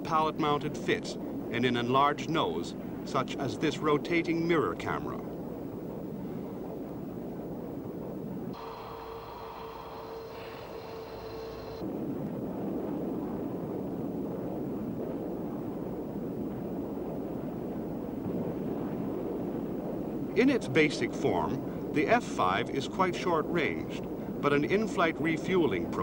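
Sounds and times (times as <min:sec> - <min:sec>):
whining tones: 0:08.5 - 0:11.9
jet aircraft rushing noise: 0:08.6 - 0:11.9.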